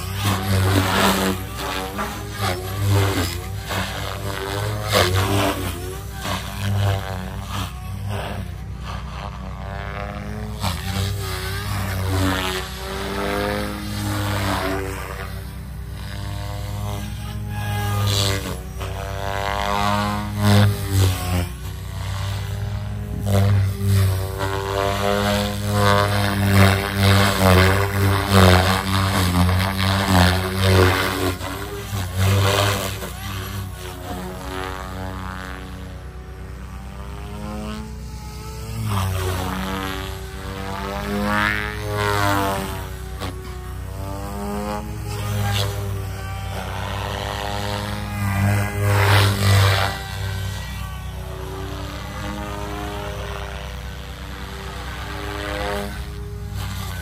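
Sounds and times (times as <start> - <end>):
electric motor whine: 0.0 - 57.0
rc helicopter rotor buzzing: 0.0 - 57.0.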